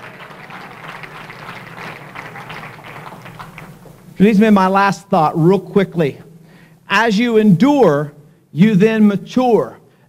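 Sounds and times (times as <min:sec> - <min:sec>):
congregation applauding: 0:00.0 - 0:04.4.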